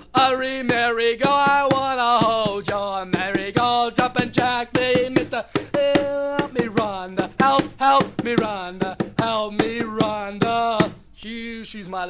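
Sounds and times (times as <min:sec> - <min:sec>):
sharp percussive knocks: 0:00.0 - 0:11.0
man singing wordless notes: 0:00.0 - 0:12.0.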